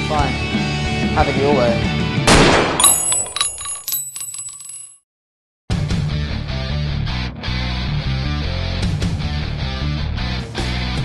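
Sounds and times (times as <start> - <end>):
light metallic clinks: 2.8 - 5.0.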